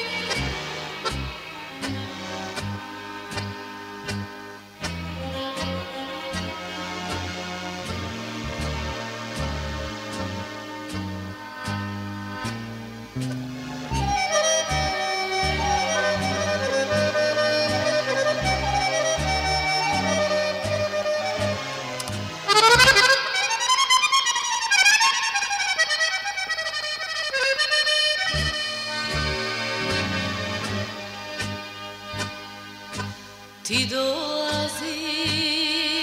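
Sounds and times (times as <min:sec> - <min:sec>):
accordion melody: 0:00.0 - 0:33.9
stepping bass line: 0:06.4 - 0:23.1, 0:28.3 - 0:33.2.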